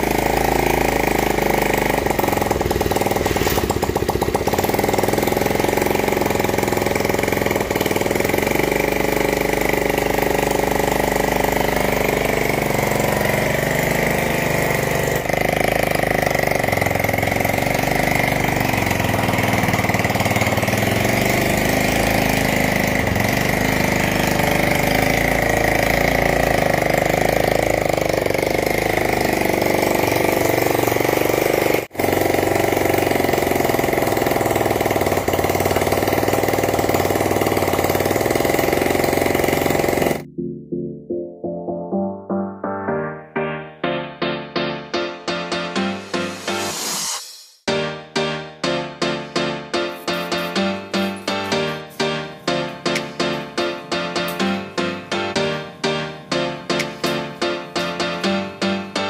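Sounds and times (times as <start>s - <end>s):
small engine idling: 0.0s - 40.3s, 47.7s - 59.0s.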